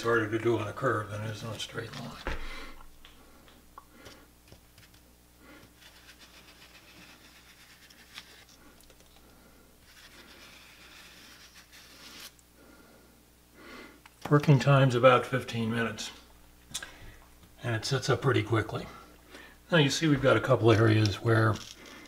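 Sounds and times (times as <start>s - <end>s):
hand scraper scraping plaster: 5.6s - 8.5s, 9.9s - 12.4s.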